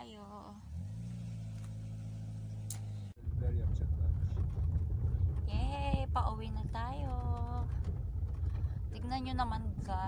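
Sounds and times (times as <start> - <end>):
low engine hum: 0.0 - 10.0
car driving on dirt road: 0.1 - 10.0.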